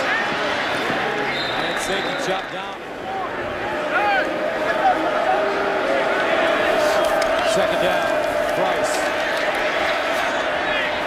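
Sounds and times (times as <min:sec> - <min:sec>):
stadium crowd shouting: 0:00.0 - 0:11.0.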